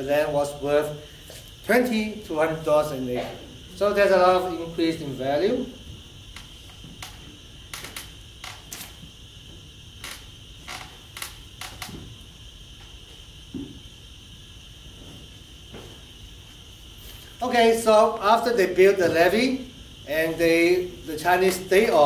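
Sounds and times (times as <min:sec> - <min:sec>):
steady high-pitched hiss: 0:00.0 - 0:22.0.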